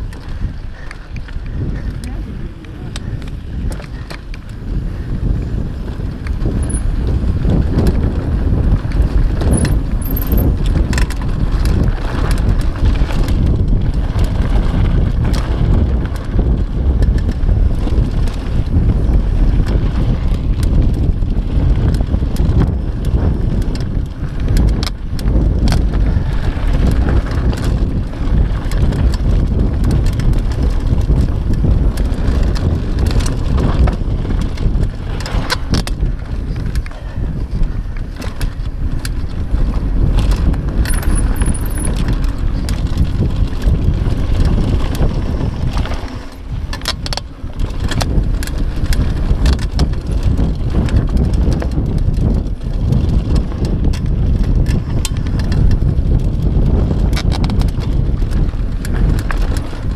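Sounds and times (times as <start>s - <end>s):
bike rattles and clicks: 0.0s - 59.9s
tyres rumbling on loose dirt: 0.0s - 59.9s
wind buffeting microphone: 0.0s - 59.9s.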